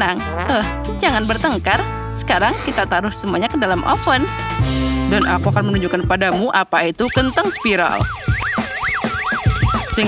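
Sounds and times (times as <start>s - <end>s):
background music with thumping beat: 0.2s - 10.0s
cartoonish warbling whistle: 7.0s - 10.0s.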